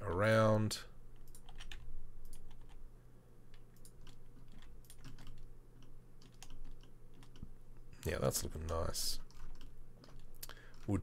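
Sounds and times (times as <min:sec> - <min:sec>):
keyboard keys clicking: 0:01.2 - 0:02.8, 0:03.5 - 0:07.5, 0:08.6 - 0:11.0.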